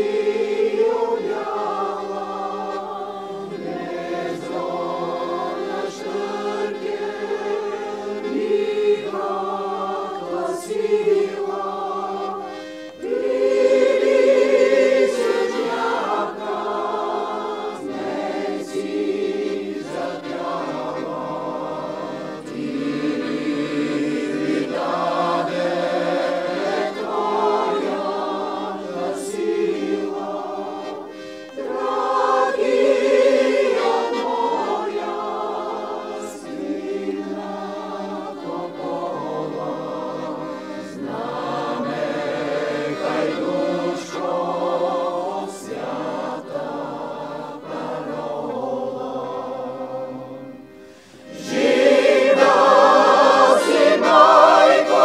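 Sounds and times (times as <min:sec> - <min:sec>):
mixed choir singing in harmony: 0:00.0 - 0:55.0.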